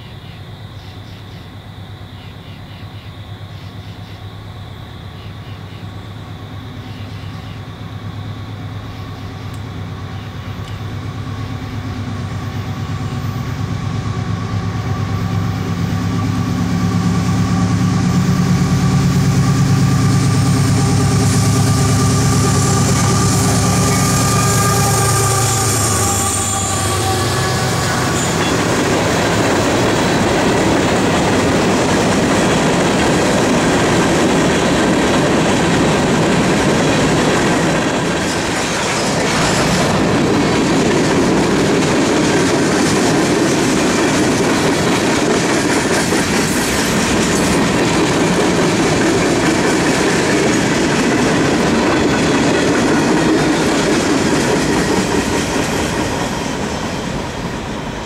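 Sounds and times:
freight train cars rolling past: 0.0 - 58.0.

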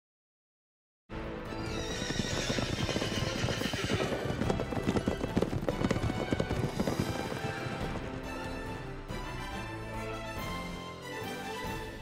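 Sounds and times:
orchestral theme music: 1.1 - 12.0
horse hooves clattering: 1.6 - 9.8.

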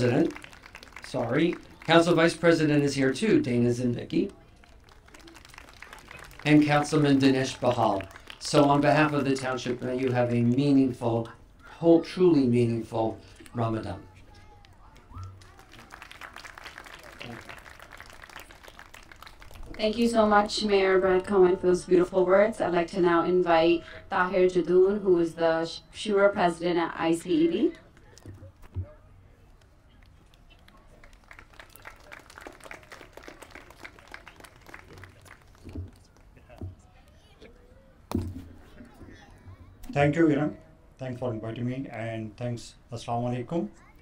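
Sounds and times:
crowd applauding: 0.0 - 2.9, 4.3 - 10.7, 14.8 - 19.8, 30.5 - 36.5.

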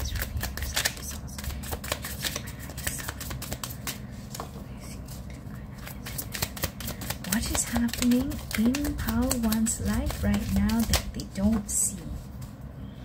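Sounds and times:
cards being shuffled: 0.0 - 11.8.

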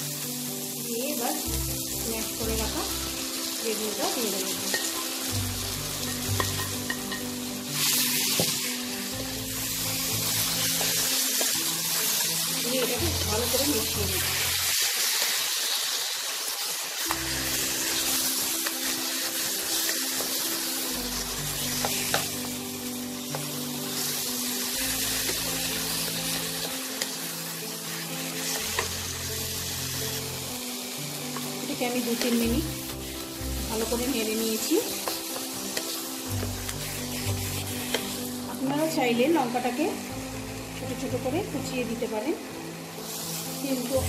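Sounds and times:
background music: 0.0 - 44.0
food sizzling in hot oil: 0.0 - 44.0.

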